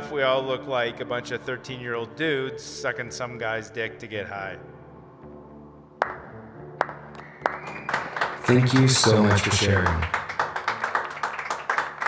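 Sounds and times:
soft background music: 0.0 - 12.0
hand claps: 6.0 - 12.0.

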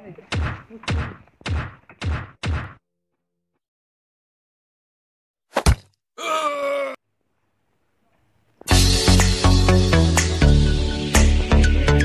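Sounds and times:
person groaning in pain: 6.2 - 7.0.

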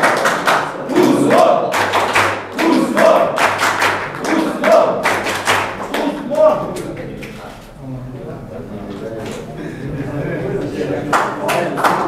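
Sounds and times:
voices chanting together: 0.0 - 7.0
group clapping in rhythm: 0.0 - 7.4, 10.6 - 12.0.

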